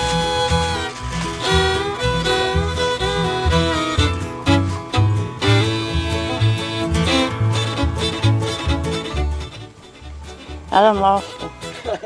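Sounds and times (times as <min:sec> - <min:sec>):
fiddle music with steady beat: 0:00.0 - 0:12.0.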